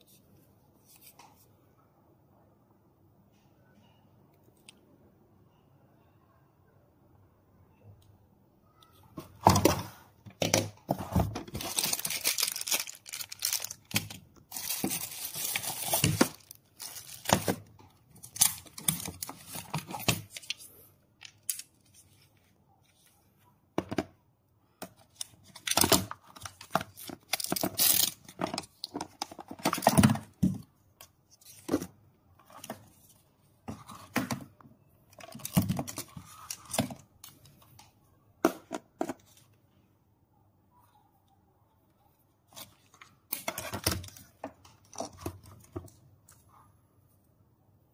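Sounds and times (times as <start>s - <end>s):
hands handling plastic equipment: 9.1s - 23.2s, 24.8s - 39.6s, 42.5s - 46.5s.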